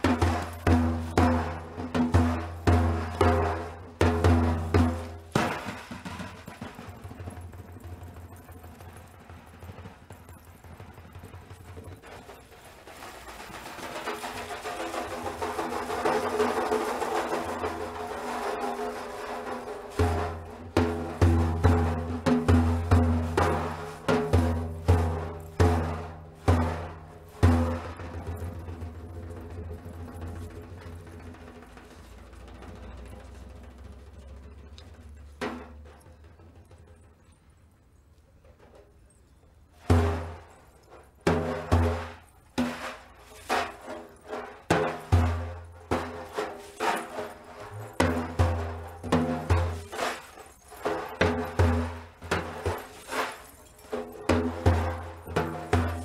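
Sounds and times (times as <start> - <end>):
frame drum played by hand: 0.0 - 8.6, 12.9 - 37.1, 41.2 - 50.2, 50.8 - 53.1, 53.9 - 56.0.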